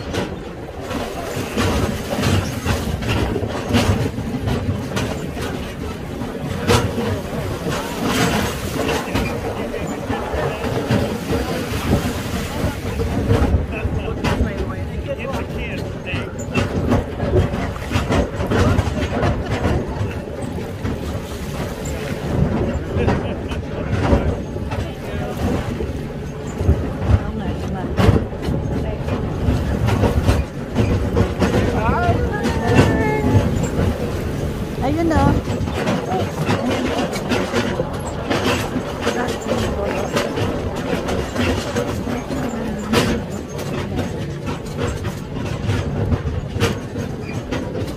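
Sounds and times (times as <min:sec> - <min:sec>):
indistinct voices: 0:00.0 - 0:20.8, 0:21.8 - 0:46.4
clatter and splashing: 0:00.0 - 0:47.9
tractor engine rumble: 0:00.0 - 0:47.9
wagon rattling and knocking: 0:00.0 - 0:47.9.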